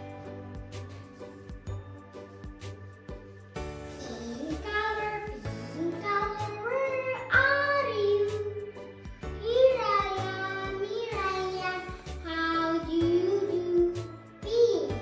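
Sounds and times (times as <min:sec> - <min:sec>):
backing music with bass line: 0:00.0 - 0:14.7
child singing: 0:04.0 - 0:08.7, 0:09.4 - 0:15.0.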